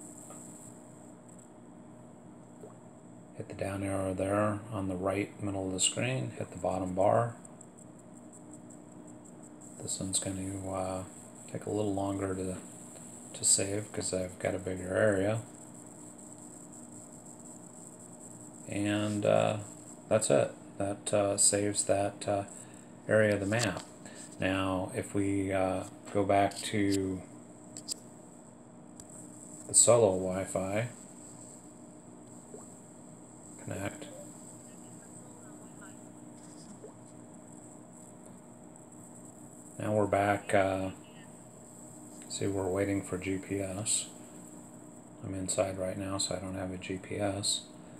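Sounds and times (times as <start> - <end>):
faint electrical hum: 0.0 - 47.9
low steady hiss: 0.0 - 47.9
thin high steady whine: 0.0 - 47.9.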